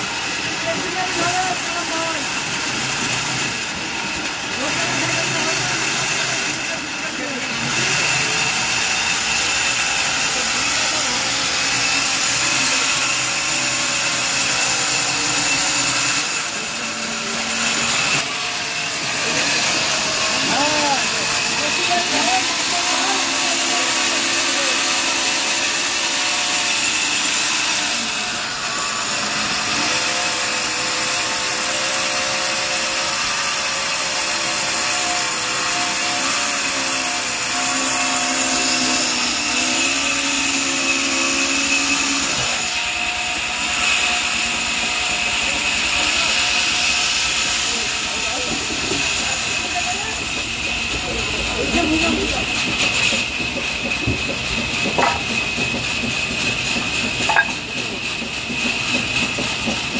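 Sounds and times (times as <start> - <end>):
band saw whining through log: 0.0 - 59.9
faint workers' voices: 0.0 - 59.9.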